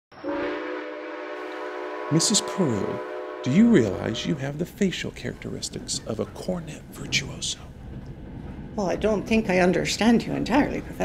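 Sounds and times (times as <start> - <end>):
train horn chord: 0.2 - 4.6
train running noise: 0.2 - 11.0.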